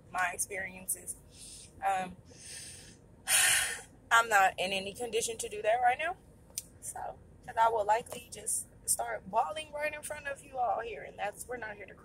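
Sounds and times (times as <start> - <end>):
woman breathing faintly: 1.2 - 3.8.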